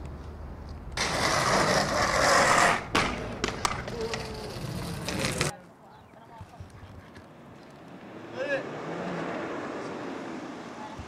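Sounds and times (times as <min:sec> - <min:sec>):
skates rolling on pavement: 0:00.0 - 0:11.0
inline skates grinding: 0:01.0 - 0:05.5
skates landing clacks: 0:01.0 - 0:05.5.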